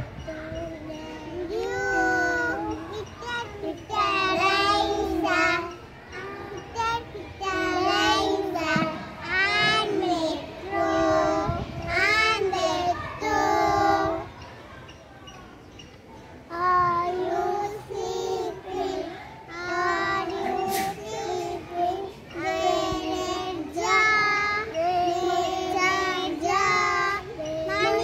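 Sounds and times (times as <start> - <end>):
young children singing: 0.0 - 15.0, 16.4 - 28.0.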